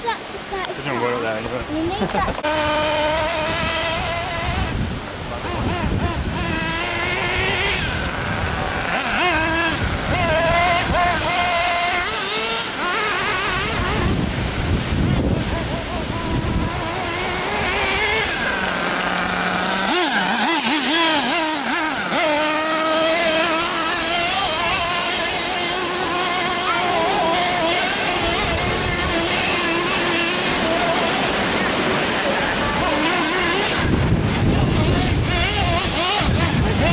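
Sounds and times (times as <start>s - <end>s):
small engine revving: 0.0s - 36.9s.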